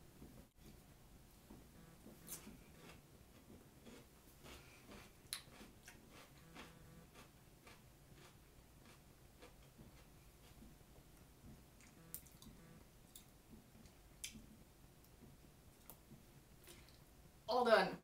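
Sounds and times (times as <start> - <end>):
person chewing: 1.8 - 10.8, 11.7 - 14.5.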